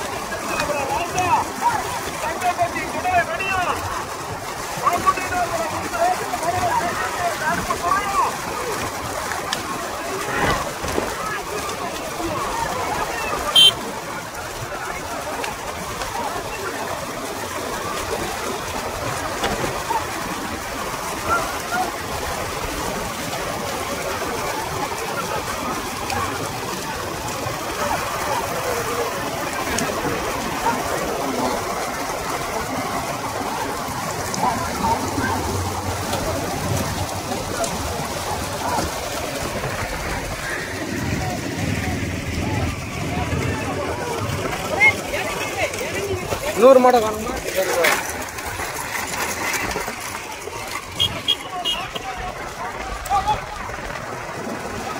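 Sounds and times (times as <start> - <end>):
racing bullock carts rushing: 0.0 - 54.9.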